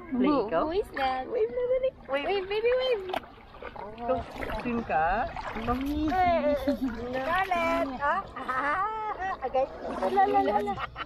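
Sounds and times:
adults talking to a baby: 0.0 - 11.0.

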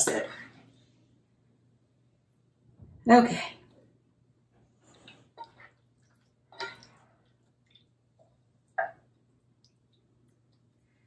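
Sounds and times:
soft squishes of meat mixture: 4.5 - 11.0.

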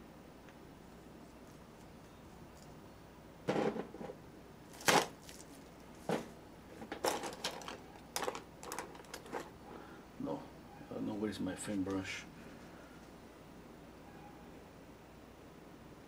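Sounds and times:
painting tools clattering: 6.1 - 9.5.

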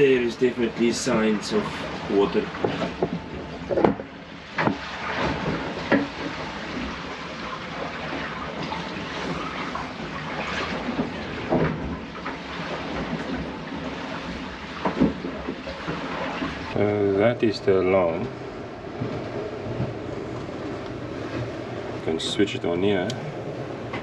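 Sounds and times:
water rushing against hull: 0.0 - 24.0
knocks and clunks of fittings: 2.6 - 6.4.

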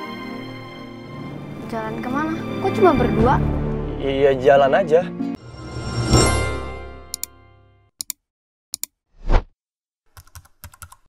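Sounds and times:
whoosh sound effect: 5.4 - 6.8
keyboard typing clicks: 10.2 - 11.0.

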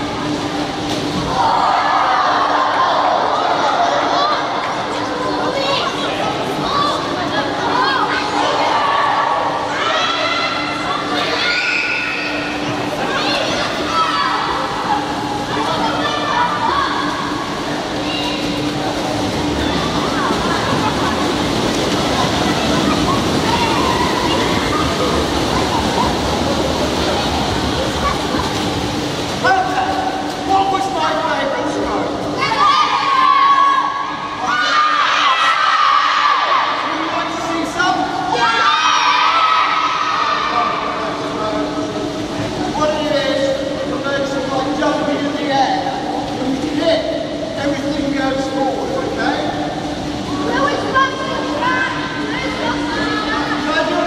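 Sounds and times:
steady low hum: 0.0 - 54.0
children shouting and cheering: 7.6 - 15.1, 38.3 - 40.8.

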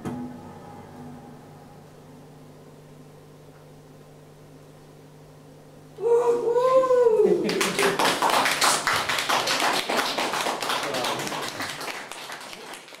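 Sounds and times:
person holding wavering note: 0.0 - 2.6
audience applauding: 7.4 - 13.0.

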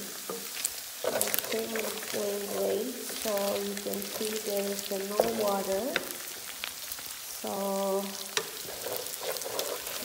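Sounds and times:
meat sizzling in a pan: 0.0 - 10.0.

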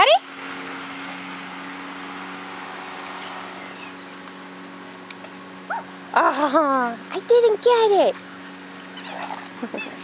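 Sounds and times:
dog whimper: 9.0 - 10.0.

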